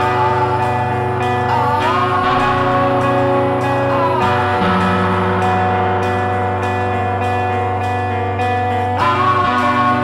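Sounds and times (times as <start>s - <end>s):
rock guitars ringing: 0.0s - 10.0s.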